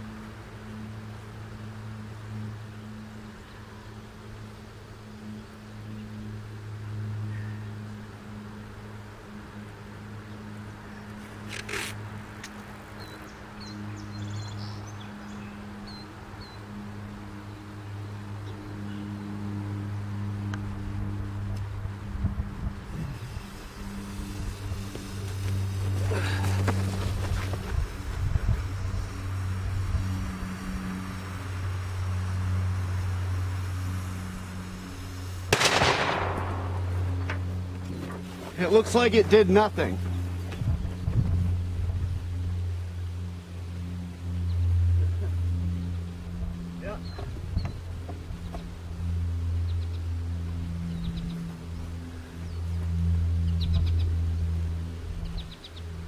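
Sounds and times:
steady low hum: 0:00.0 - 0:56.0
detonator cap blast: 0:35.5 - 0:37.6.

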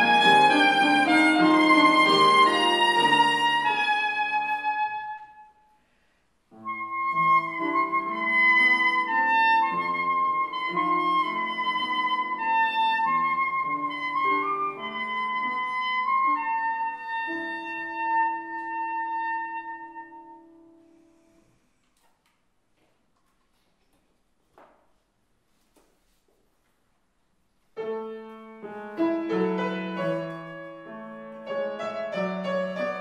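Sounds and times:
grand piano: 0:00.0 - 0:05.6, 0:06.4 - 0:21.8, 0:27.7 - 0:33.0
soprano saxophone: 0:00.0 - 0:05.7, 0:06.6 - 0:20.8.

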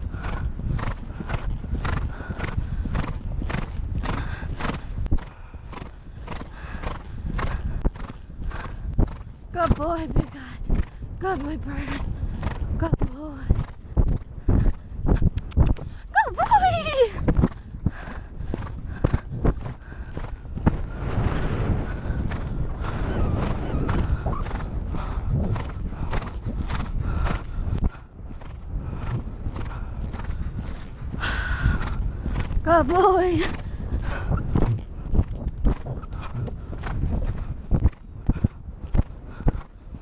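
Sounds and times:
wind on microphone: 0:00.0 - 0:40.0
horse hoofbeats on turf: 0:23.9 - 0:39.7.

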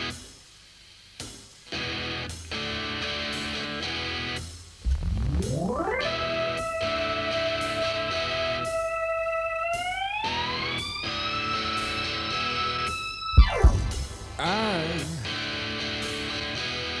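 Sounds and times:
electric guitar sustained note: 0:04.8 - 0:16.7.

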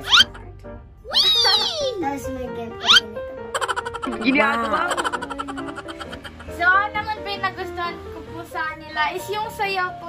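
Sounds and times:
background music: 0:00.0 - 0:10.0
rising chirp effect: 0:02.8 - 0:03.0.

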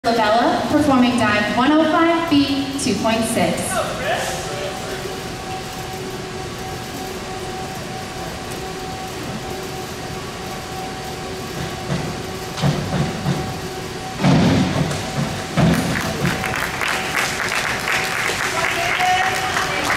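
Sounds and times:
steady hum: 0:00.0 - 0:19.9
diving board thumps: 0:14.2 - 0:16.2
scattered clapping: 0:14.9 - 0:19.9.

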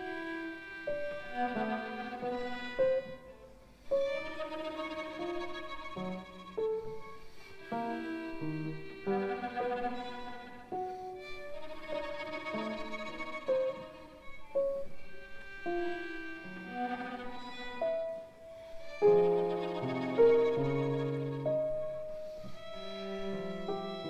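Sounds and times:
violin cello and piano trio: 0:00.0 - 0:24.0.

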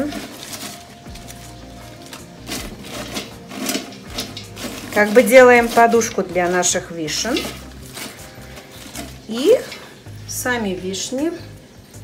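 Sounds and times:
faint music: 0:00.0 - 0:12.0
twigs and leaves rustling: 0:00.0 - 0:12.0.

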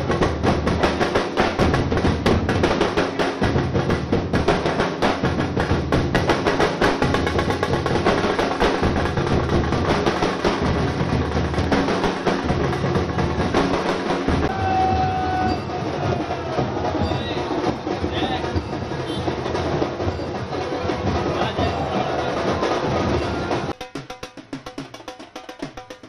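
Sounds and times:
drum-led festive music: 0:00.0 - 0:26.0.

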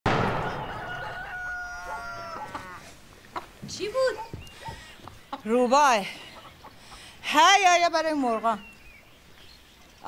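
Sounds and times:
gunshot: 0:00.1 - 0:01.3
rooster crowing: 0:00.4 - 0:02.9.

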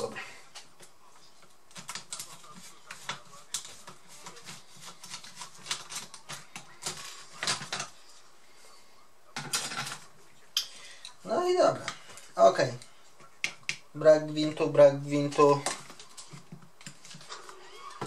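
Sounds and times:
plastic clattering: 0:01.7 - 0:08.0, 0:09.4 - 0:10.1.

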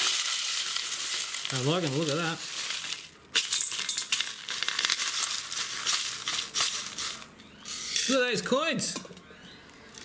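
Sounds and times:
metal shot and coins rattling: 0:00.0 - 0:08.2.

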